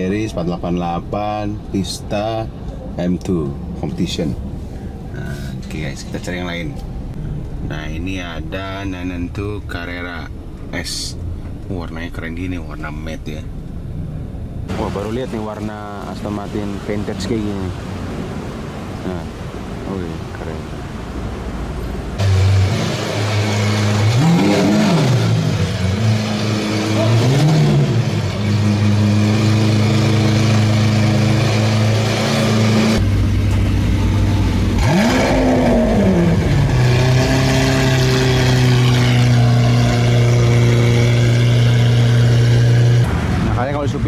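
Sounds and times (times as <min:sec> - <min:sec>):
sports car engines revving at idle: 0:22.2 - 0:43.8.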